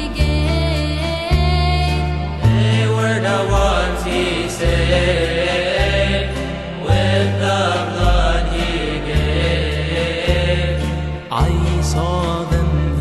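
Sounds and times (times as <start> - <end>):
person chanting a hymn: 2.6 - 13.0.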